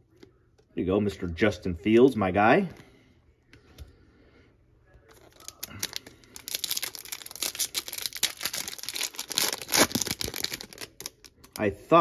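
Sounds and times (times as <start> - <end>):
foil wrapper crinkling: 5.1 - 11.6
foil wrapper ripping: 5.2 - 11.3.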